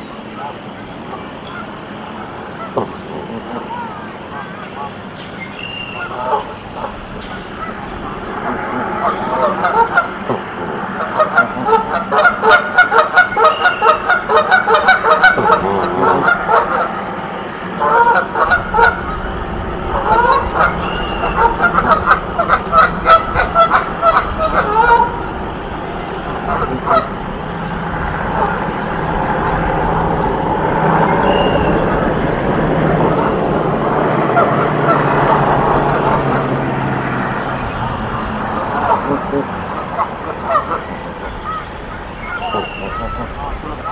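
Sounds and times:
geese honking: 0.0 - 43.9.

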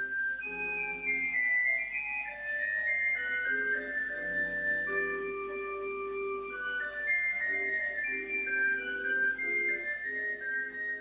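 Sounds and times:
slow melody of held notes: 0.0 - 11.0.

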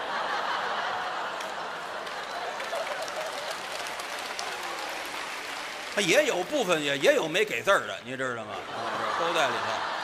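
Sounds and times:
audience laughing: 0.0 - 4.0, 8.5 - 10.0
audience applauding: 0.8 - 8.0.

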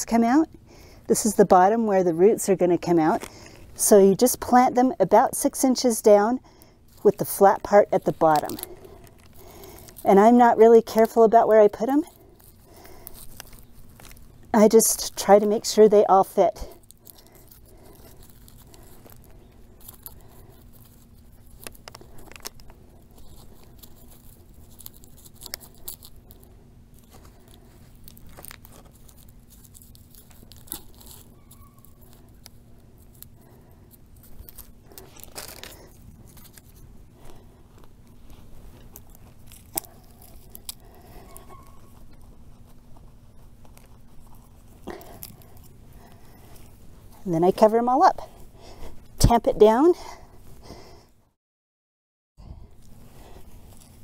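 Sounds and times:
faint steady hum: 0.0 - 51.4, 52.4 - 54.0.

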